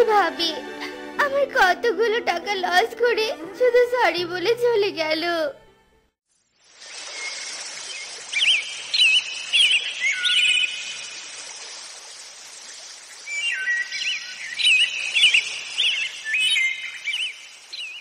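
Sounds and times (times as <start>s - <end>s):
steady outdoor hiss: 6.3s - 18.0s
birds chirping and whistling: 7.0s - 11.4s, 13.1s - 18.0s.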